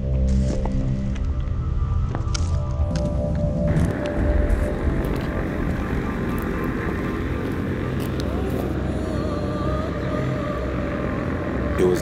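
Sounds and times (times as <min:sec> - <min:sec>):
faint engine whine: 0:00.0 - 0:12.0
aircraft engine rumble: 0:01.2 - 0:12.0.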